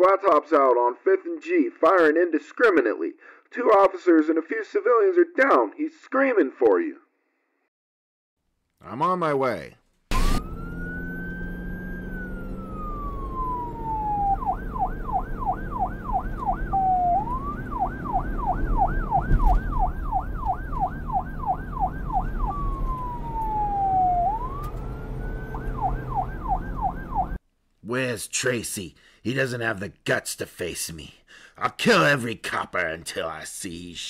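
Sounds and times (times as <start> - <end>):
police siren wail and yelp: 10.1 - 27.4.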